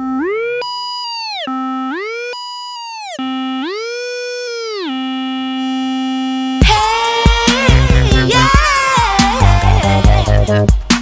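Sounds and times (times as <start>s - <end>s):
synthesizer tone sliding in pitch: 0.0s - 6.6s
electronic dance beat and bass: 6.6s - 11.0s.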